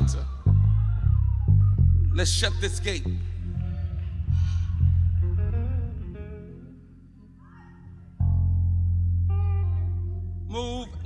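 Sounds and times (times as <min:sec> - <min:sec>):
church band music: 0:02.2 - 0:07.4.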